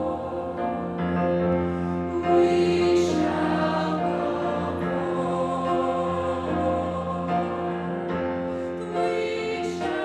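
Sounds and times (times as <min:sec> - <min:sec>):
choir singing sustained notes: 0:00.0 - 0:10.0.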